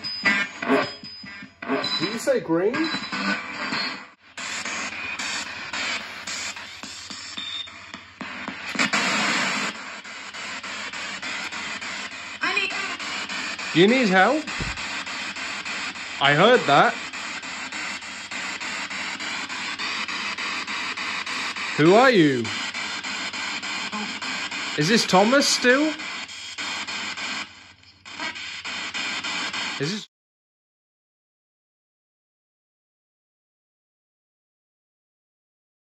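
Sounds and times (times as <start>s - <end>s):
radio static bursts: 0.0s - 1.0s, 1.6s - 30.1s.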